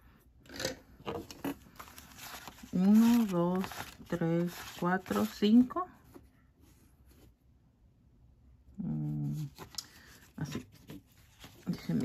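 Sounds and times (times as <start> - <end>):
paper bills rustling: 1.6 - 5.8, 9.4 - 12.0.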